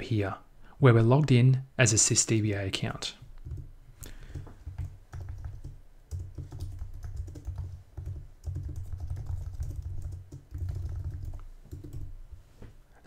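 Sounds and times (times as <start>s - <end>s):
typing on computer keyboard: 3.4s - 3.7s, 4.3s - 12.1s.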